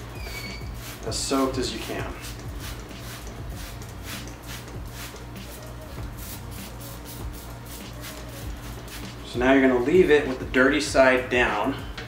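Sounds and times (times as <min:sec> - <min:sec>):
quiet background music: 0:00.0 - 0:12.0
spray bottle hissing: 0:00.1 - 0:09.2.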